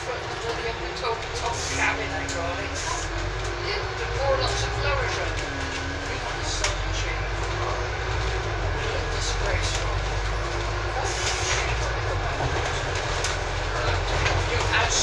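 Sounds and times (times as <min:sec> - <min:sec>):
bus engine and road rumble: 0:00.0 - 0:15.0.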